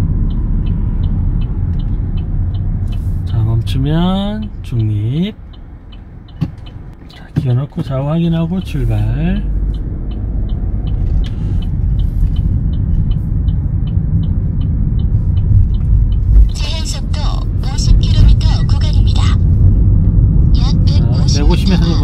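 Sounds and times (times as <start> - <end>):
engine and road rumble: 0.0 - 22.0
turn signal ticking: 0.0 - 22.0.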